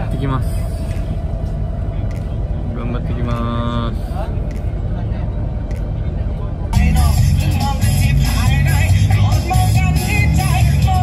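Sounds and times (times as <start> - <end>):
bus rumble inside cabin: 0.0 - 11.0
music with a voice: 6.8 - 11.0.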